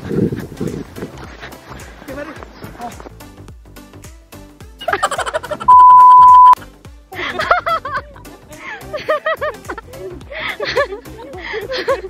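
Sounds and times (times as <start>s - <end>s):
background music with steady beat: 0.0s - 12.0s
censor bleep: 5.7s - 6.6s.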